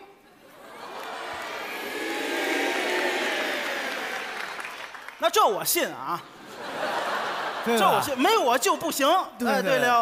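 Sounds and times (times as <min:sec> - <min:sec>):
audience laughing: 0:00.2 - 0:04.6, 0:06.2 - 0:08.7
audience applauding: 0:00.5 - 0:05.8.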